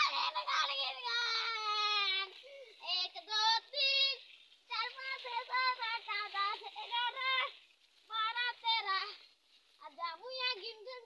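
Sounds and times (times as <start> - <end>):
child's high-pitched voice: 0.0 - 11.0.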